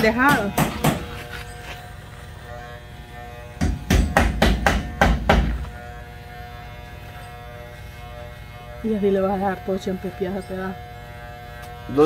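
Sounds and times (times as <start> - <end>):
electric trimmer humming: 0.0 - 12.0.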